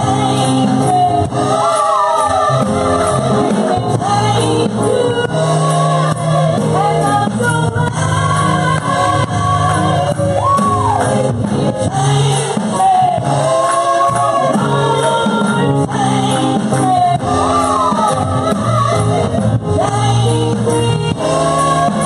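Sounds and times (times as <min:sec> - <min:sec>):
drum kit: 0:00.0 - 0:22.0
electric keyboard: 0:00.0 - 0:22.0
women singing gospel: 0:00.0 - 0:22.0.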